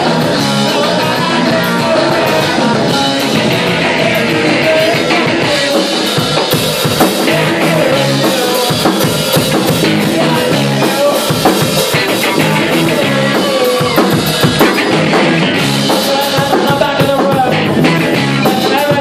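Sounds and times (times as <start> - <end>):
rock band playing loud: 0.0 - 19.0.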